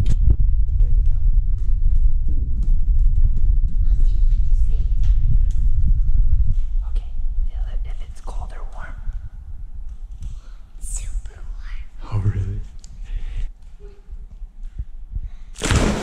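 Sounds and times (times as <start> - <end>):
quick footsteps: 0.0 - 16.0
wind rumble: 0.0 - 16.0.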